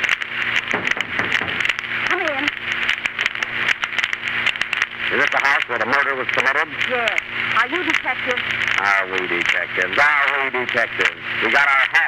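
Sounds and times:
low hum: 0:00.0 - 0:12.0
recording hiss and crackle: 0:00.0 - 0:12.0.

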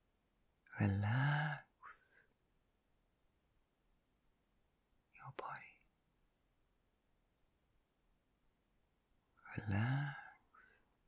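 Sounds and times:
woman whispering breath: 0:05.2 - 0:05.8.

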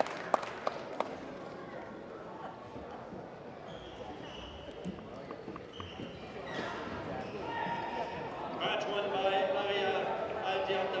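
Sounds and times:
chatter in large hall: 0:00.0 - 0:11.0
shoes squeaking on sports floor: 0:03.4 - 0:08.4.

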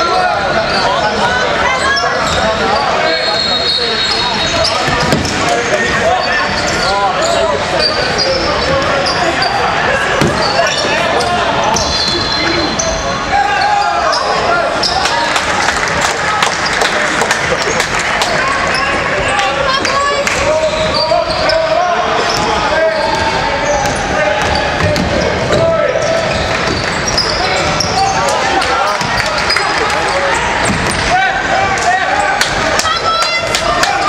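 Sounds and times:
sneakers squeaking: 0:00.0 - 0:15.3, 0:16.4 - 0:31.1
people calling out: 0:27.1 - 0:34.0.

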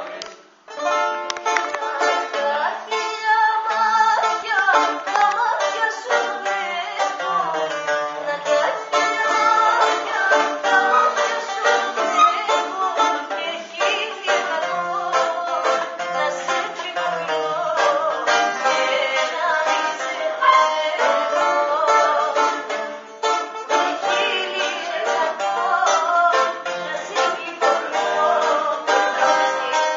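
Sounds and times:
bouzouki picked notes: 0:00.0 - 0:29.9
woman singing: 0:01.6 - 0:22.8, 0:23.6 - 0:29.9.

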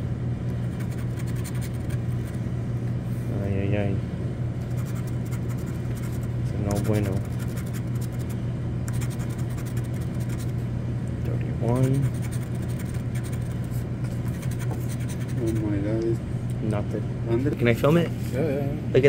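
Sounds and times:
steady low hum: 0:00.0 - 0:19.0
scratcher scraping lottery ticket: 0:00.7 - 0:02.4, 0:04.6 - 0:10.6, 0:11.6 - 0:15.6.

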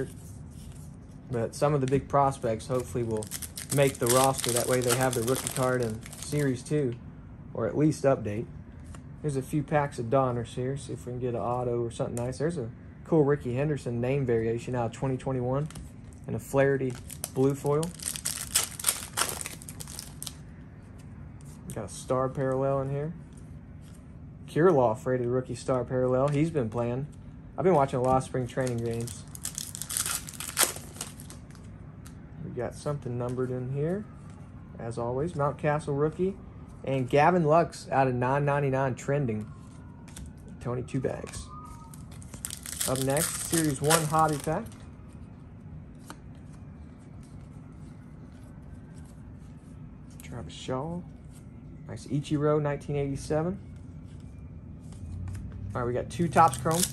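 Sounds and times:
cards sliding through fingers: 0:00.0 - 0:01.2
plastic wrapper crinkling and tearing: 0:02.7 - 0:06.6, 0:16.9 - 0:20.4, 0:28.6 - 0:31.7, 0:41.9 - 0:44.8, 0:56.3 - 0:56.9.

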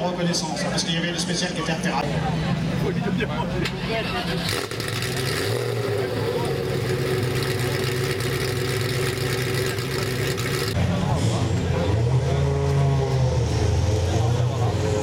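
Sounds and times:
vehicle engine running: 0:02.0 - 0:15.0.

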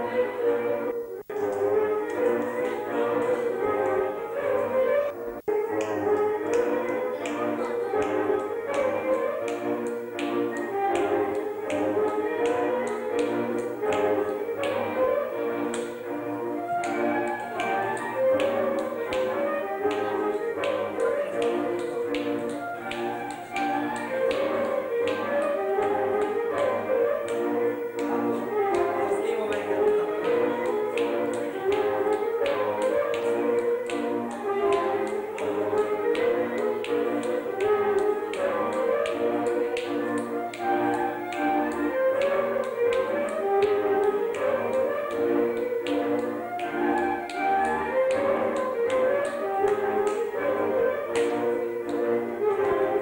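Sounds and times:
folk dance music: 0:00.0 - 0:53.0
hands slapping legs and shoes: 0:01.2 - 0:53.0.

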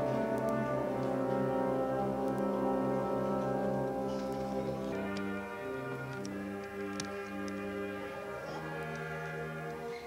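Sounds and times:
concert band holding wind chords: 0:00.0 - 0:10.0.

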